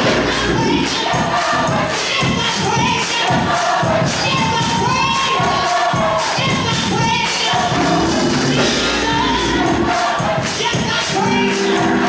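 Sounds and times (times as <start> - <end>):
choir singing: 0.0 - 12.0
percussion beat: 0.0 - 12.0.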